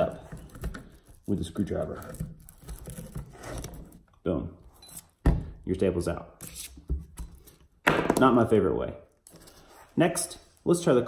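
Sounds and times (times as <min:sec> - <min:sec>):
tools scraping and clicking on wood: 0:00.0 - 0:05.2.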